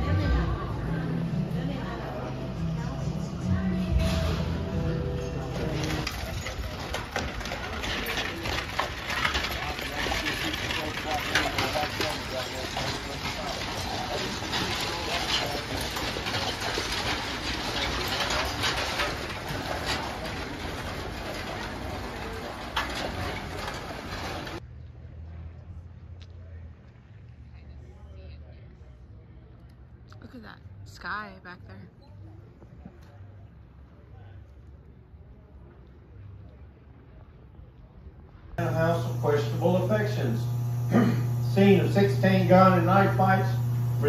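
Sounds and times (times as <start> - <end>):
wooden coach wheels clattering: 3.8 - 24.6, 38.6 - 44.0
hooves clopping on dirt: 5.4 - 24.6.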